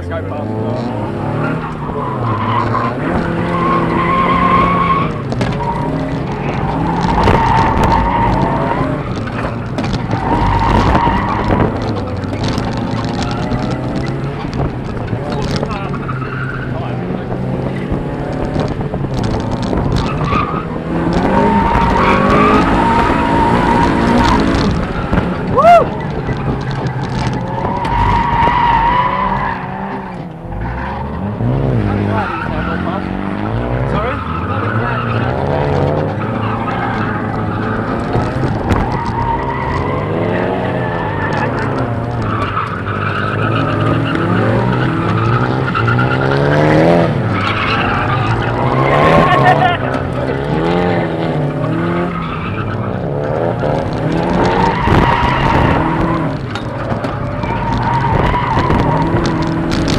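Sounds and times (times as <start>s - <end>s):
car engine revving hard: 0.2s - 25.6s, 26.2s - 59.9s
tyres squealing: 0.8s - 17.8s, 19.2s - 59.9s.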